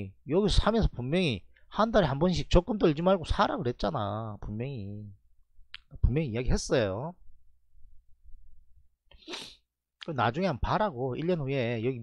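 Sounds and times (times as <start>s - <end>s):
person sniffing sharply: 9.1s - 9.7s.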